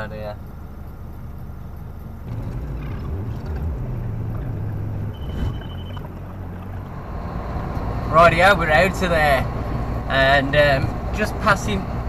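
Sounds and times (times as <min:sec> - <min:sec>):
diesel engine rumble: 0:00.0 - 0:12.0
short high beep: 0:05.1 - 0:06.0.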